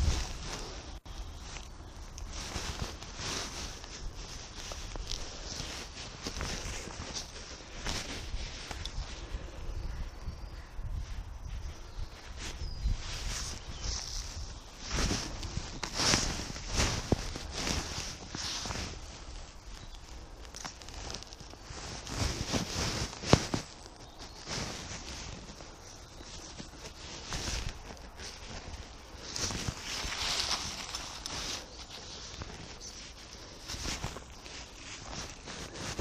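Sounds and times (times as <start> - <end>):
tent being handled: 0.0 - 9.4, 11.1 - 36.0
footsteps on dry leaves: 0.0 - 36.0.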